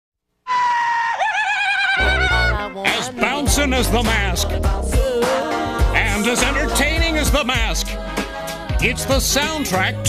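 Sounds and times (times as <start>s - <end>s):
high-pitched warbling scream: 0.5s - 2.8s.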